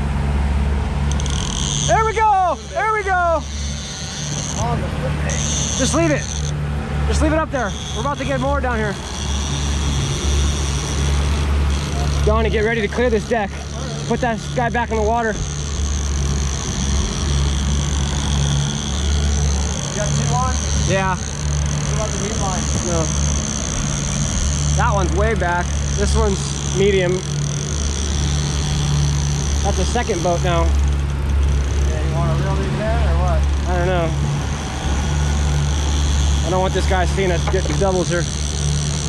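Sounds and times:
outboard motors droning: 0.0 - 39.0
water rushing along hull: 0.0 - 39.0.

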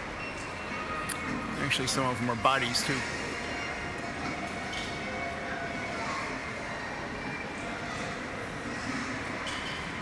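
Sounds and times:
even hum of indoor hall: 0.0 - 10.0.

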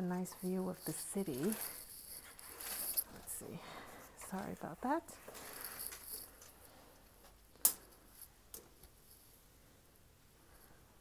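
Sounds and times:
curtain fabric rustling: 0.0 - 9.5.

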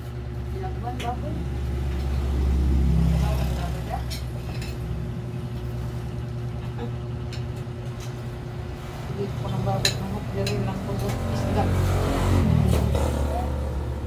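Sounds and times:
low engine rumble: 0.0 - 14.0.

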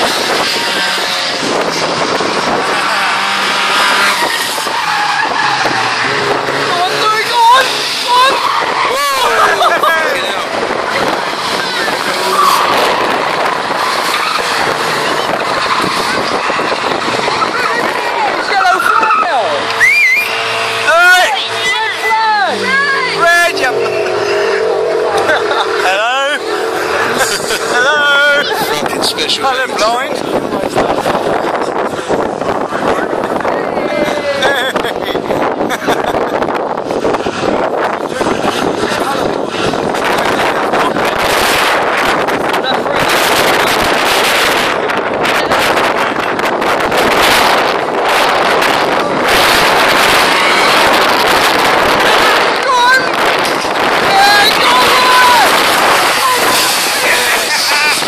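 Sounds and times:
wind on microphone: 0.0 - 19.6, 22.4 - 58.0
race car engines revving: 0.0 - 58.0.

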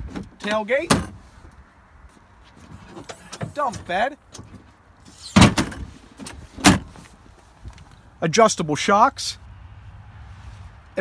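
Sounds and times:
loud clunks of dump bed: 2.8 - 7.0.

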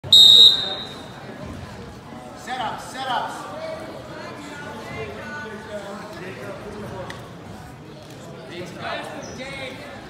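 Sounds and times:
referee's whistle blast: 0.0 - 1.1.

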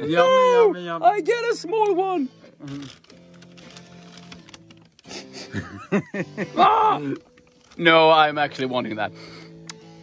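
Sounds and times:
people laughing: 5.2 - 7.0.

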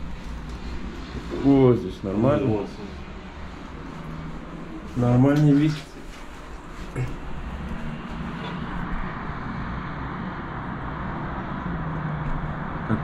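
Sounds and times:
distant city traffic hum: 0.0 - 13.0.

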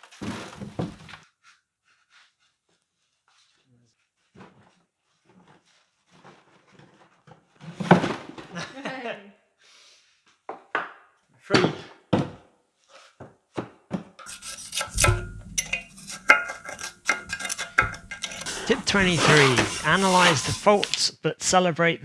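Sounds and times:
metal plate scraping through sand: 14.2 - 21.1.

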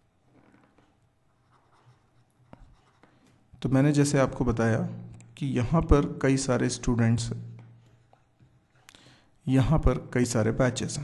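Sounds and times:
stylus scratching on tablet: 0.8 - 3.3.

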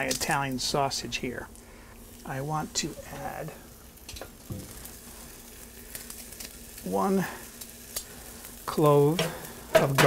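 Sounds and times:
meat sizzling in a skillet: 0.0 - 10.0.

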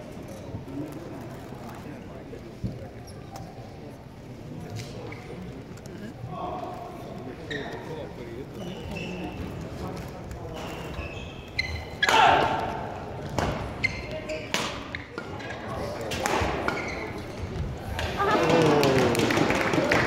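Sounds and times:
shoes squeaking on court: 7.3 - 12.1, 13.2 - 17.8
murmur of spectator voices: 14.2 - 20.0.

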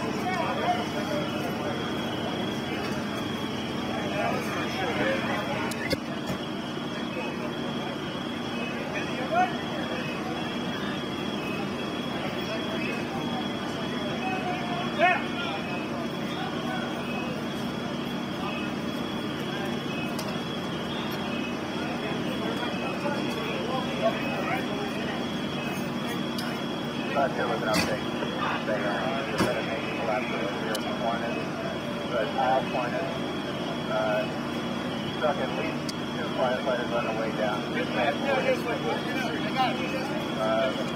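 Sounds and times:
emergency vehicle engines idling: 0.0 - 40.9
indistinct voices: 0.0 - 40.9.

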